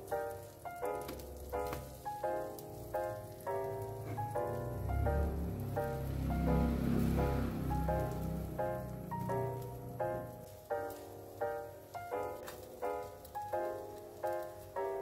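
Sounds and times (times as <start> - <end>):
food sizzling in a pan: 0.0 - 15.0
gentle instrumental music: 0.0 - 15.0.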